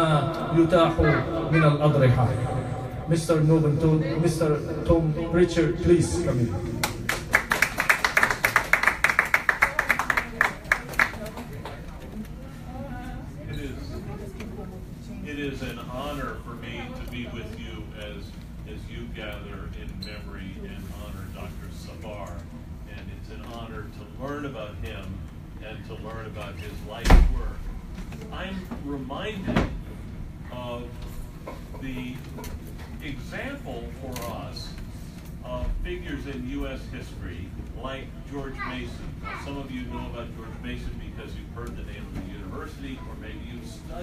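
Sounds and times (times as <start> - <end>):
small audience applauding: 6.8 - 11.9.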